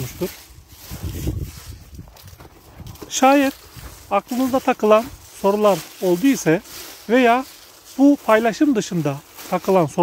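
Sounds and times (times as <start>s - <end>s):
hands rustling through leaves: 0.0s - 10.0s.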